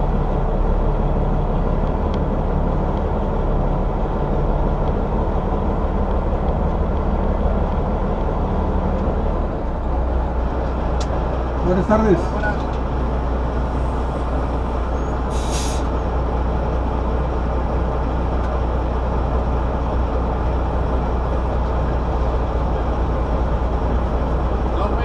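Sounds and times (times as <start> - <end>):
diesel engine idling: 0.0 - 25.0
air brake hiss: 15.3 - 16.0.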